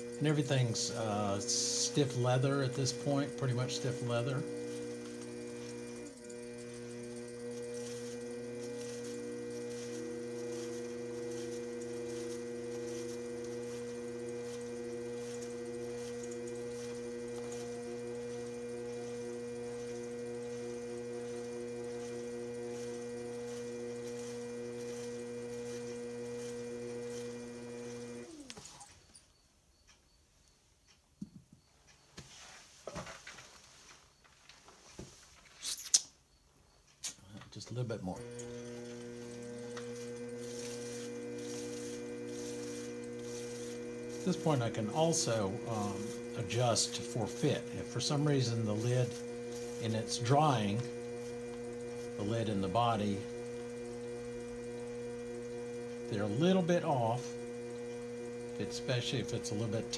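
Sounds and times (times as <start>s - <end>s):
potter's wheel motor humming: 0.0s - 29.4s, 37.3s - 59.9s.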